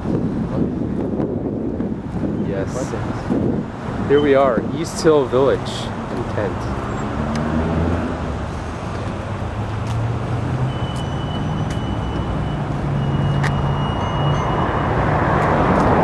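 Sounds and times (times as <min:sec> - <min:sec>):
passing car engines: 0:00.0 - 0:16.0.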